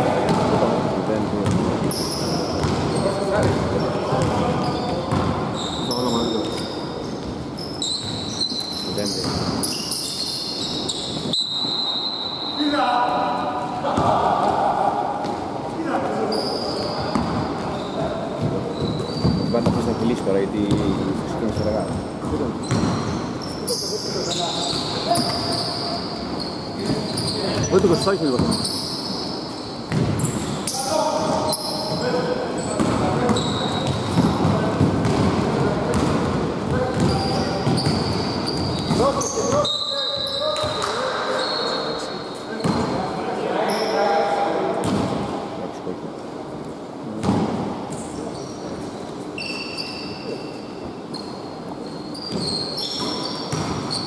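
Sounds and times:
shoes squeaking on court: 0:01.4 - 0:12.8, 0:16.1 - 0:35.3, 0:35.9 - 0:43.0, 0:47.2 - 0:54.0.

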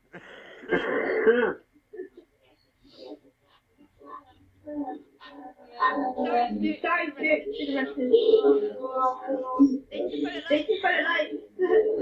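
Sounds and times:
man clearing his throat: 0:00.2 - 0:02.2.

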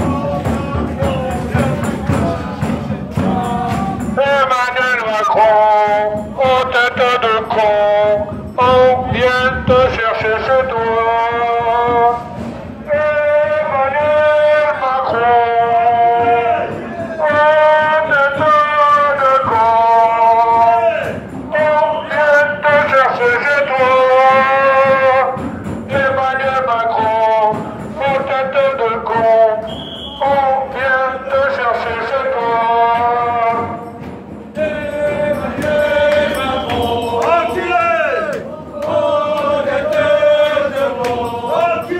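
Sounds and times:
crowd singing a chant: 0:00.0 - 0:41.9.

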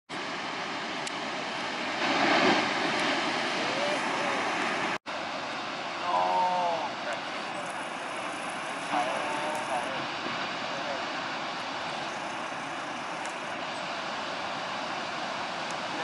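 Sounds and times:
heavy surf roaring: 0:00.1 - 0:16.0
people talking: 0:03.6 - 0:04.6, 0:06.0 - 0:10.1, 0:10.7 - 0:11.1.

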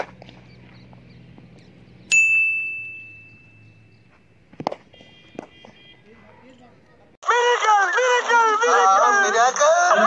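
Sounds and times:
bell-like ding ringing: 0:02.1 - 0:04.0.

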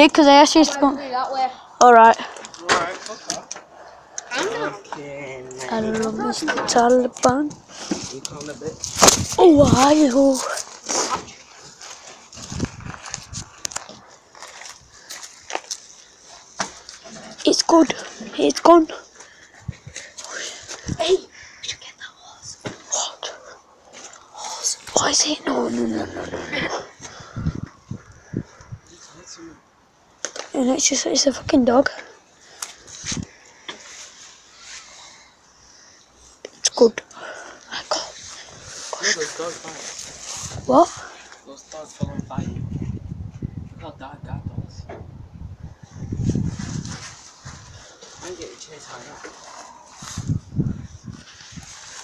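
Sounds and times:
nearby voices: 0:24.3 - 0:27.0.

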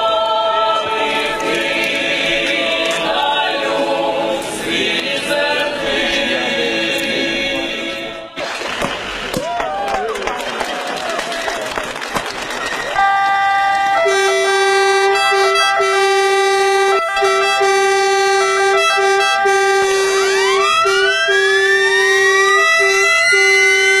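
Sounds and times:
sirens with rising wail: 0:12.5 - 0:24.0
pulsed siren tone: 0:13.0 - 0:24.0.

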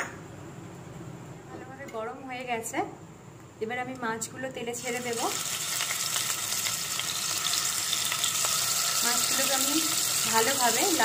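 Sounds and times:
fish frying in hot oil: 0:04.8 - 0:11.0.

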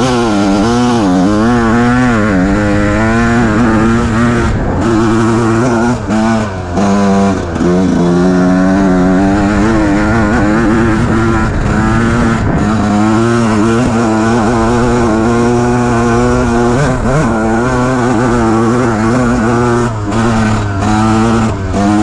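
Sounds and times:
dirt bike engine revving: 0:00.0 - 0:22.0.

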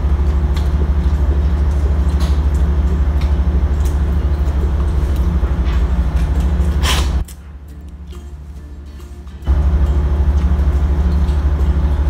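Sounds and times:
engine throbbing low rumble: 0:00.0 - 0:12.0.

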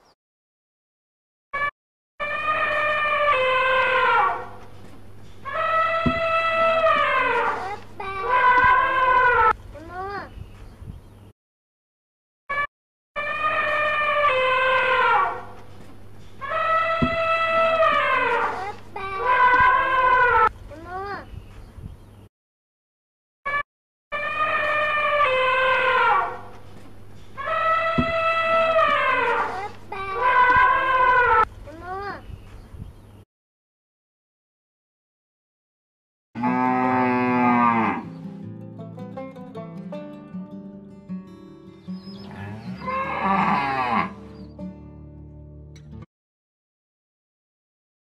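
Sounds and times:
elephant trumpeting: 0:01.6 - 0:04.6, 0:05.4 - 0:09.6, 0:12.5 - 0:15.6, 0:16.4 - 0:20.5, 0:24.1 - 0:26.5, 0:27.4 - 0:31.5, 0:42.2 - 0:44.2
cow mooing: 0:36.4 - 0:38.1, 0:42.3 - 0:44.2.

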